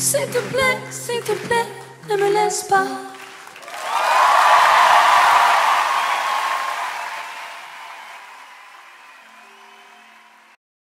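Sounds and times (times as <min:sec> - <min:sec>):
audience applauding: 0:00.3 - 0:10.6
audience cheering: 0:03.2 - 0:10.6.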